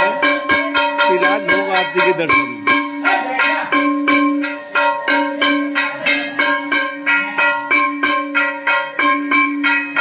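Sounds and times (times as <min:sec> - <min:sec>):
temple bells struck rapidly: 0:00.0 - 0:10.0.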